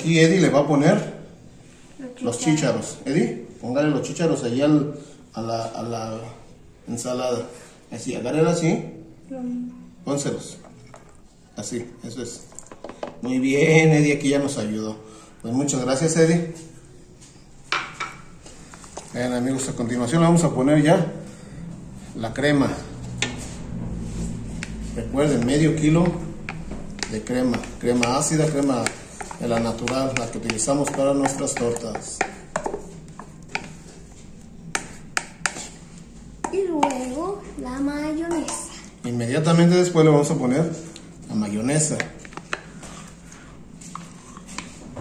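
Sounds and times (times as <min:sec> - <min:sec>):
steady low hum: 0:13.5 - 0:45.0.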